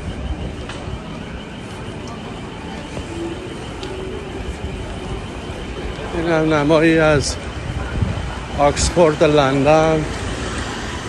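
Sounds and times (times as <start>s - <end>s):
indistinct voices of passers-by: 0.0s - 11.0s
traffic rumble: 0.0s - 11.0s.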